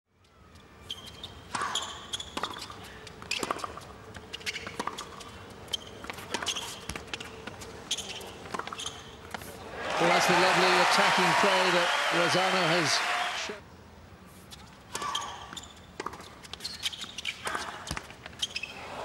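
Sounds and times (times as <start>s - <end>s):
shoes squeaking on court: 0.5s - 9.6s, 14.4s - 18.8s
tennis ball bouncing: 1.5s - 9.5s, 14.9s - 16.6s
crowd applause: 9.7s - 13.6s.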